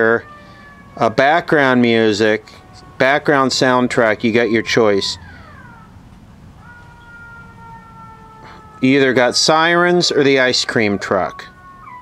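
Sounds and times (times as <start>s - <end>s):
distant siren wailing: 0.0s - 12.0s.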